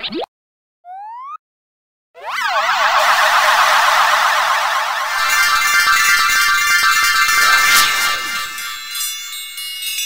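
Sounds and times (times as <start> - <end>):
cartoon magic spell warble: 2.2 - 9.0
twinkling shimmer: 5.1 - 10.0.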